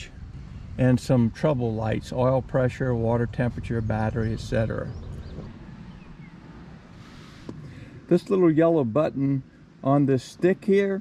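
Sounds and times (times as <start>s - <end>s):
wind buffeting microphone: 0.0s - 6.9s.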